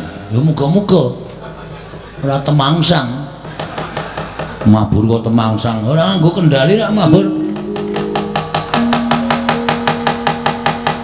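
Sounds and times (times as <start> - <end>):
steady low held note: 6.5 - 11.0
wooden knocker striking metal plates: 7.0 - 11.0.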